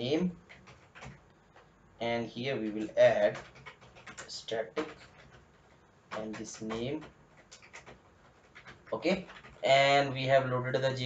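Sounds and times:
microphone hiss: 0:00.0 - 0:03.5
computer keyboard clicks: 0:00.5 - 0:01.7, 0:02.6 - 0:09.6.

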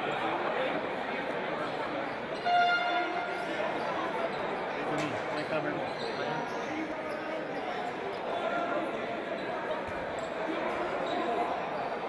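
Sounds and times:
people talking in a hall: 0:00.0 - 0:12.0.

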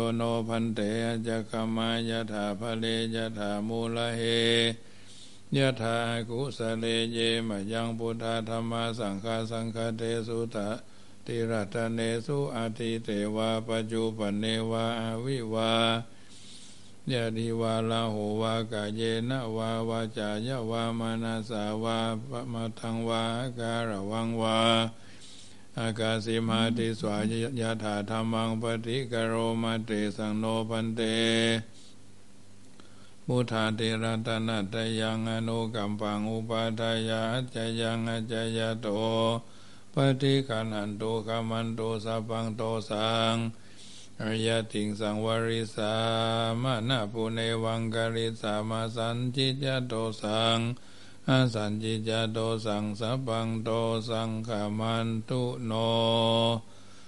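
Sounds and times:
monk chanting: 0:00.0 - 0:04.8, 0:05.5 - 0:16.1, 0:17.0 - 0:25.0, 0:25.8 - 0:31.7, 0:33.3 - 0:43.6, 0:44.2 - 0:56.7.

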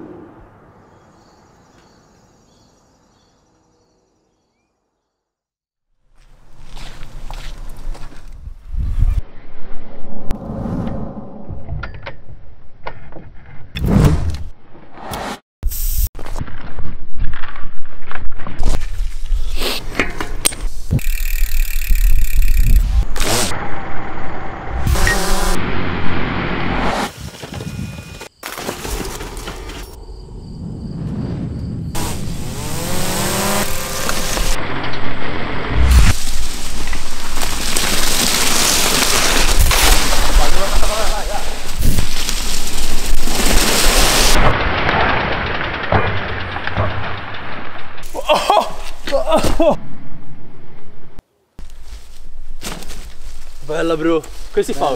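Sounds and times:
bike tyres rolling through leaves: 0:06.2 - 0:08.4, 0:27.1 - 0:29.9, 0:35.4 - 0:45.9, 0:51.6 - 0:54.9.

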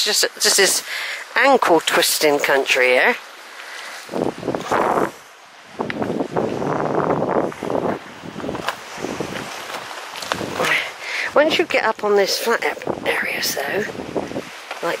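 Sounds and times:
footsteps on pebbles: 0:07.4 - 0:10.8
stones clicking underfoot: 0:08.6 - 0:10.8.

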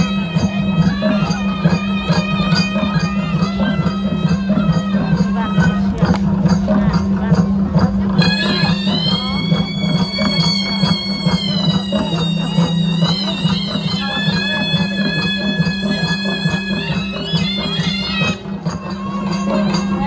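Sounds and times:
reed pipe playing high notes: 0:00.0 - 0:20.0
steady drumming: 0:00.0 - 0:20.0.

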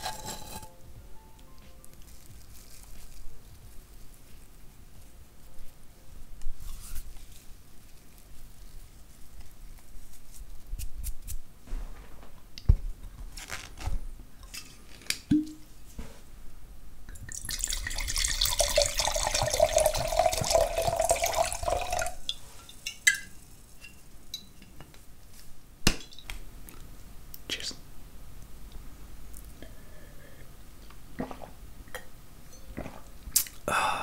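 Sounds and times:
wine pouring into a glass: 0:17.2 - 0:23.3.

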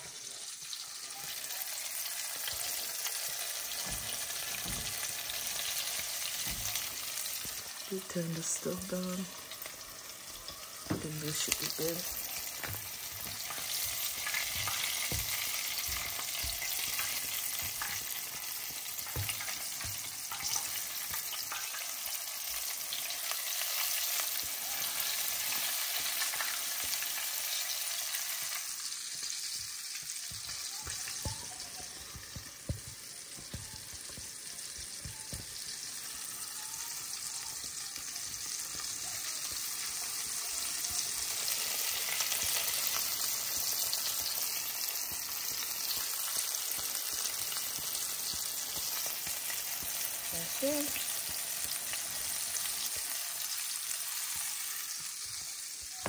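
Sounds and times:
chicken frying in hot oil: 0:00.0 - 0:56.0.

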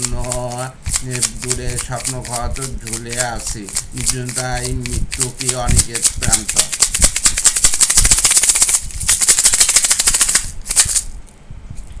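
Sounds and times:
plastic bottle shaker rattling: 0:00.0 - 0:11.2.

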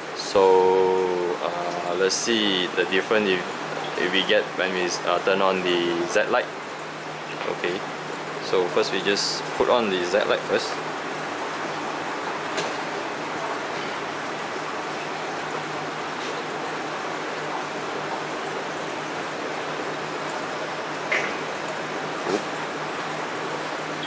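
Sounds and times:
low pump hum: 0:00.0 - 0:24.0
water rushing through tanks: 0:00.0 - 0:24.0.

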